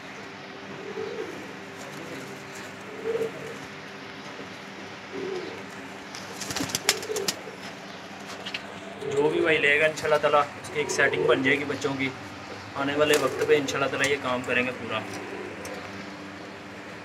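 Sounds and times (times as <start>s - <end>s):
pigeons cooing: 0.0s - 17.0s
sharp clicks and rustles: 6.1s - 8.8s.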